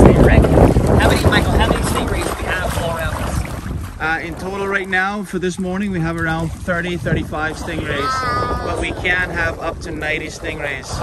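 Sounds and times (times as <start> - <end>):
wind buffeting microphone: 0.0 - 11.0
faint voices: 7.7 - 9.2.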